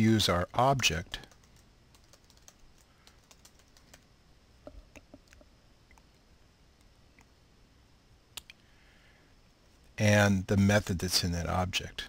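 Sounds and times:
typing on computer keyboard: 0:01.1 - 0:04.0.

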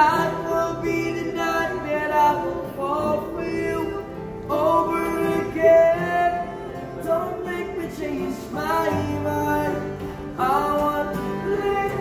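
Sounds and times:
man singing slow song: 0:00.0 - 0:12.0
strummed acoustic guitars: 0:00.0 - 0:12.0.

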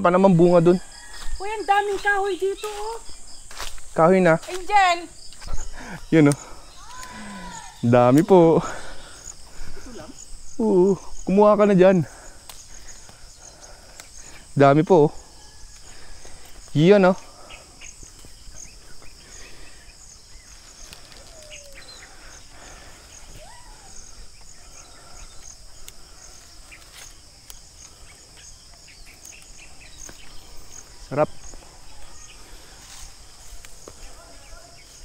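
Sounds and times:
insects chirping: 0:00.0 - 0:35.0
distant voices: 0:04.4 - 0:35.0.

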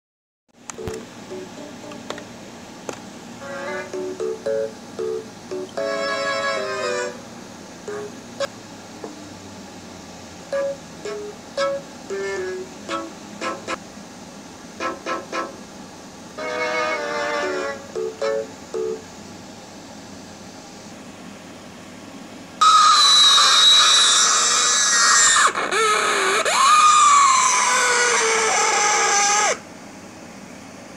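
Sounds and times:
shrill high-pitched screech: 0:22.6 - 0:29.6.

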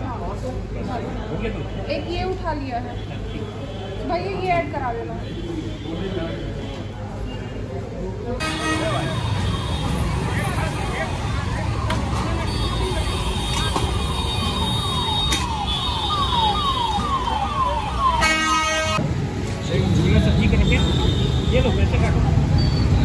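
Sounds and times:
traffic: 0:00.0 - 0:23.0
vehicle horn honking: 0:08.4 - 0:10.0, 0:18.2 - 0:19.0.

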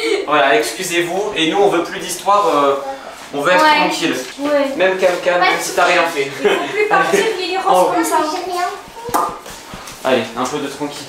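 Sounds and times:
people talking: 0:00.0 - 0:09.4
child's voice: 0:08.0 - 0:09.4.

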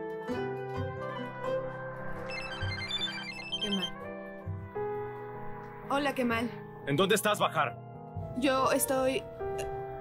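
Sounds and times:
soft background music: 0:00.0 - 0:10.0
mobile phone ringtone: 0:02.2 - 0:04.0.

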